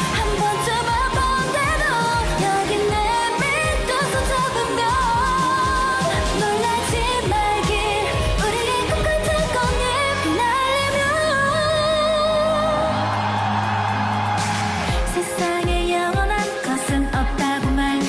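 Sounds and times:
women singing with vibrato: 0.0 - 13.5, 14.9 - 18.0
electronic dance beat and bass: 0.0 - 18.0.

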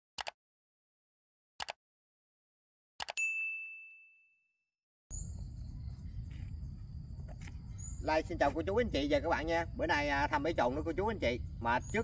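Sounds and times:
bright bell ding: 3.2 - 4.6
insect chirring: 5.1 - 12.0.

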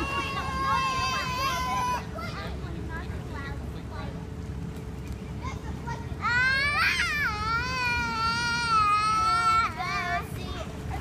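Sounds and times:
child wailing: 0.0 - 2.2, 6.2 - 10.1.

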